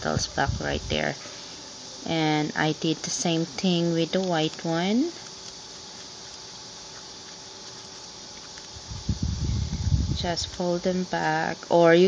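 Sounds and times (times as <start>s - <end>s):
faint hum: 0.0s - 12.0s
steady background hiss: 0.0s - 12.0s.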